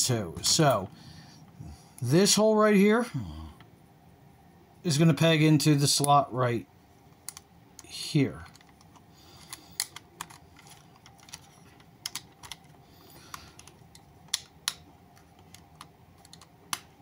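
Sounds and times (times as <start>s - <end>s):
plastic toy parts clicking: 8.5s - 16.9s.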